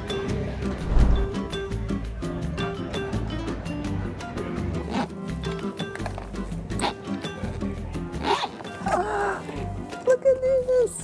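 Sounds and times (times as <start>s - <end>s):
background music: 0.0s - 11.0s
suitcase zipper rasping: 8.2s - 8.8s.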